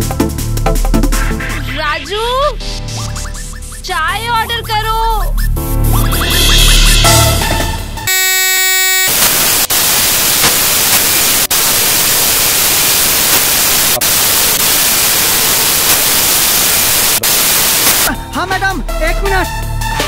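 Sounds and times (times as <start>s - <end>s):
buzzing electronic tone: 2.6s - 18.1s
loud static hiss: 8.1s - 18.1s.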